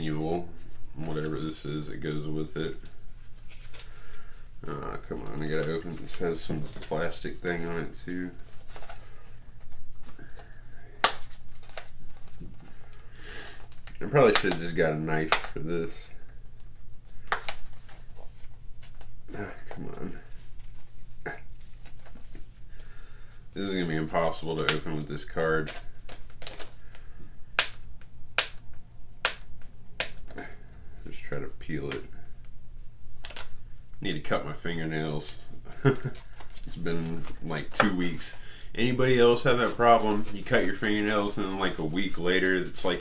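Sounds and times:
plastic packaging snapping: 13.6 - 15.6, 25.6 - 27.0, 27.6 - 28.6, 33.2 - 33.6
plastic wrapper crinkling: 23.7 - 27.8, 33.2 - 33.6, 35.2 - 43.0.

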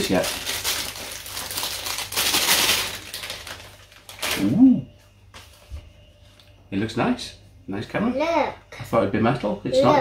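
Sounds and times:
plastic bag crinkling: 0.0 - 4.5.

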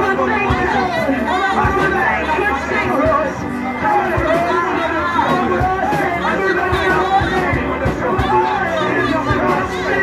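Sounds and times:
amplified voices over pa: 0.0 - 10.0.

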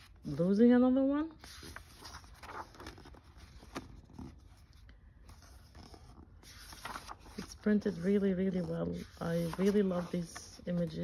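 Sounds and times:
glossy paper pages rustling: 1.3 - 11.0
book page turning: 1.4 - 11.0.

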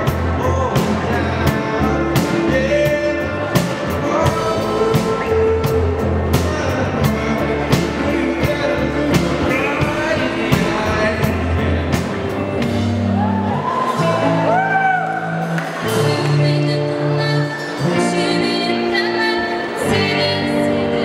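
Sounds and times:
man singing into a microphone: 0.0 - 12.6, 15.8 - 21.0
steady beat: 0.0 - 14.7
electric guitar: 0.0 - 21.0.

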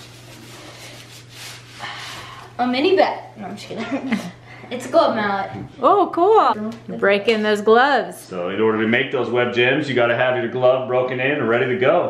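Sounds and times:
bubble wrap crinkling: 0.0 - 2.0.

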